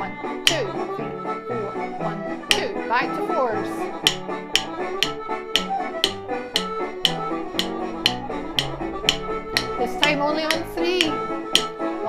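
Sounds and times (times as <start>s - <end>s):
instrumental backing music: 0.0s - 12.0s
drumsticks tapping a beat: 0.4s - 0.9s, 2.4s - 11.8s.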